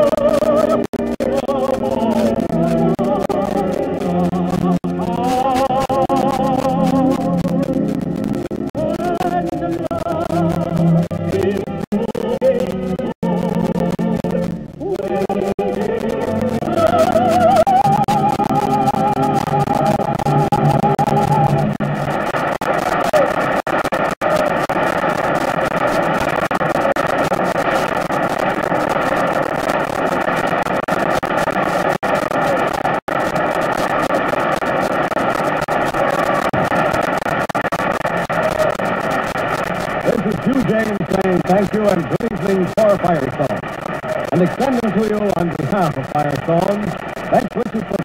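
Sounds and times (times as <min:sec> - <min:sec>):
indistinct voice: 0:00.0 - 0:08.0, 0:08.7 - 0:26.9, 0:39.9 - 0:48.0
old broadcast recording noise: 0:00.0 - 0:48.0.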